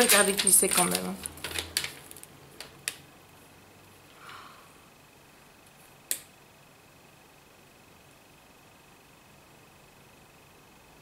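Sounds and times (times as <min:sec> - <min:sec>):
packaging clicks and taps: 0:00.0 - 0:03.0.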